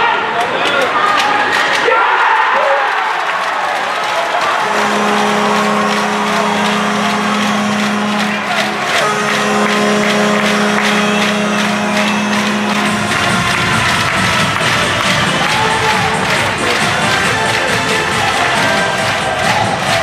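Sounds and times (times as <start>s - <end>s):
crowd noise: 0.0s - 20.0s
arena goal horn blasting: 4.4s - 20.0s
music: 4.6s - 20.0s.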